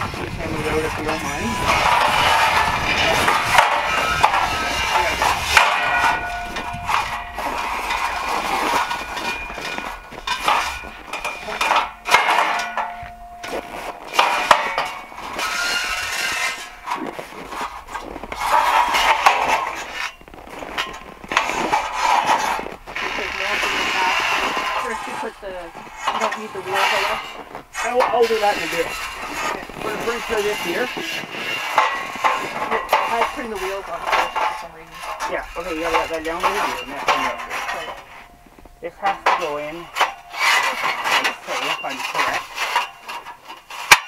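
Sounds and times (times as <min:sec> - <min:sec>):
metal scaffold clanks: 0:00.0 - 0:44.0.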